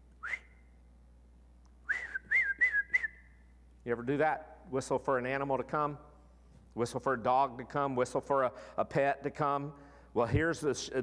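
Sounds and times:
man whistling: 0:00.2 - 0:00.8, 0:01.8 - 0:03.5.

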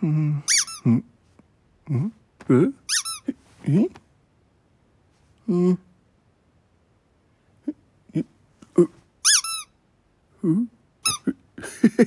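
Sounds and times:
cartoon low grunts: 0:00.0 - 0:01.2, 0:01.8 - 0:04.0, 0:07.6 - 0:09.1
cartoon high squeaks: 0:00.5 - 0:01.0, 0:02.8 - 0:03.4, 0:09.2 - 0:09.8, 0:11.0 - 0:11.4.

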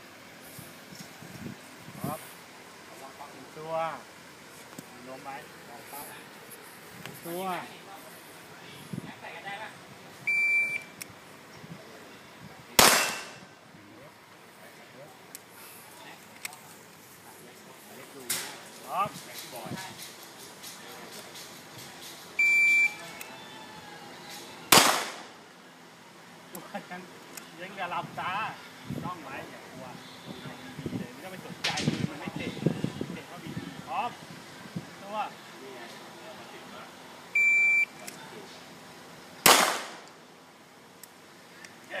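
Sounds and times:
pistol shot: 0:12.8 - 0:13.4, 0:24.7 - 0:25.3, 0:39.4 - 0:40.1
shot timer beep: 0:37.4 - 0:37.9.

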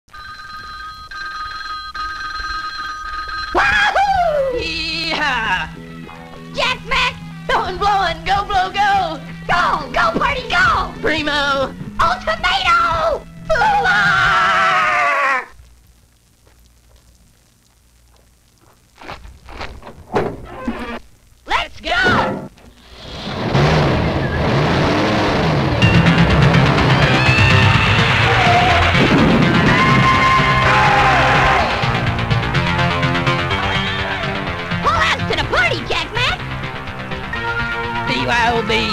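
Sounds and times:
cartoon telephone ringing: 0:00.1 - 0:04.0
loud yelling voice: 0:03.6 - 0:04.8, 0:12.1 - 0:15.6, 0:21.5 - 0:22.4, 0:27.2 - 0:32.0
falling vocal cry: 0:13.6 - 0:15.6, 0:26.9 - 0:32.0
cartoon engine revving: 0:22.9 - 0:31.8.

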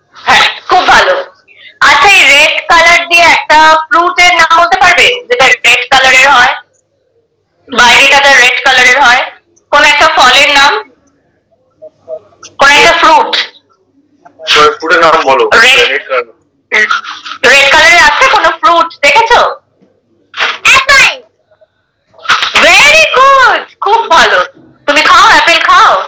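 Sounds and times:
person speaking over video call: 0:22.2 - 0:26.0
person talking: 0:22.2 - 0:26.0.

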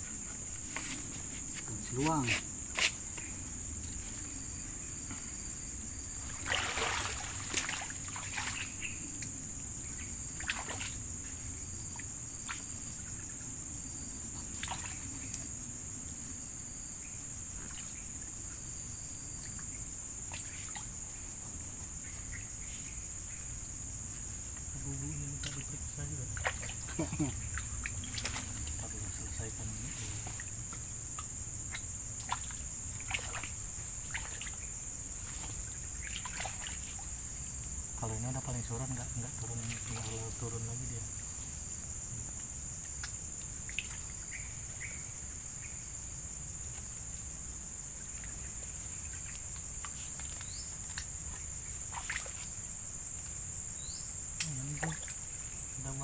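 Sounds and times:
high-pitched insect chorus: 0:00.0 - 0:56.0.

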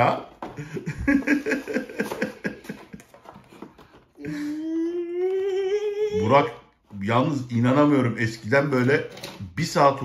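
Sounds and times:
person humming rising note: 0:04.5 - 0:06.2.

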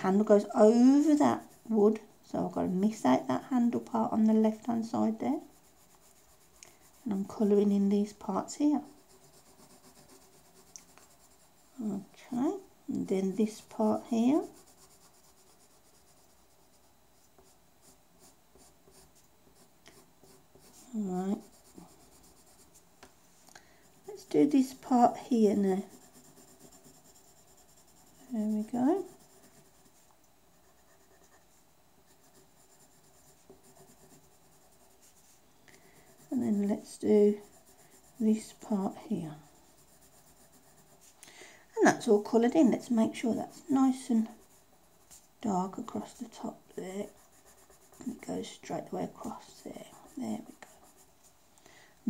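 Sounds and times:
pencil scratching on paper: 0:00.1 - 0:22.8, 0:23.9 - 0:41.2, 0:42.0 - 0:51.2.

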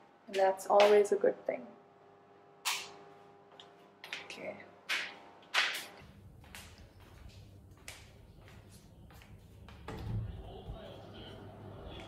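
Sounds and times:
footstep clicks: 0:04.9 - 0:10.0
football broadcast on television: 0:09.9 - 0:12.0.

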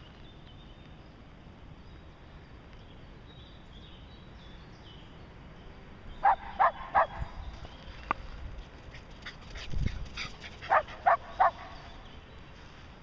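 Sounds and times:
dog barking: 0:06.2 - 0:07.2, 0:10.7 - 0:11.8
dog yipping: 0:06.2 - 0:07.2, 0:10.2 - 0:11.8.

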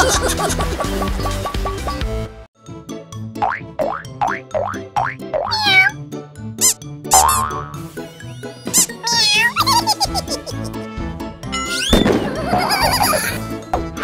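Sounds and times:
bouncy cartoon music: 0:00.0 - 0:14.0.

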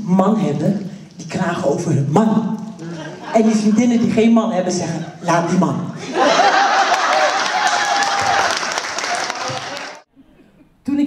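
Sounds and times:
audience applauding: 0:06.3 - 0:10.1.

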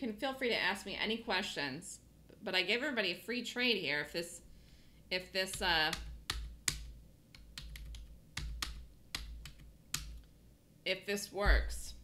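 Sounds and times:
computer keyboard keystrokes: 0:05.5 - 0:10.3.

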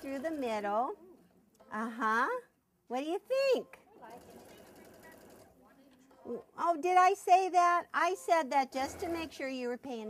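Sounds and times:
sewing machine stitching: 0:00.0 - 0:00.7, 0:04.0 - 0:06.4, 0:08.7 - 0:09.6.

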